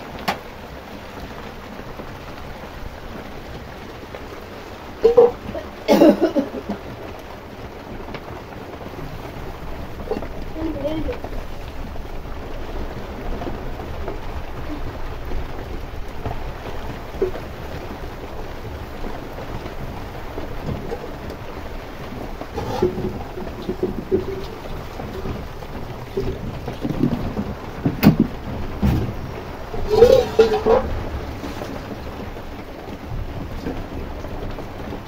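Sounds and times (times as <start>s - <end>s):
fire crackling: 0.0s - 35.0s
fire rumbling: 0.0s - 35.0s
wood knocking and popping: 20.6s - 32.3s.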